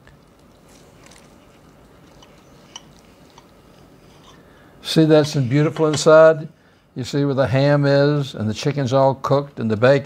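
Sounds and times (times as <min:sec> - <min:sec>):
crispy bacon crunching: 0:00.0 - 0:04.0.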